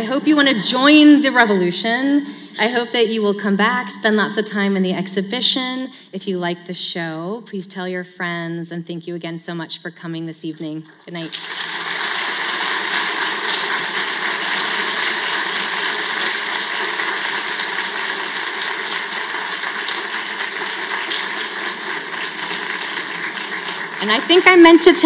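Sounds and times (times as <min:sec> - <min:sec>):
audience applauding: 0:11.0 - 0:25.0.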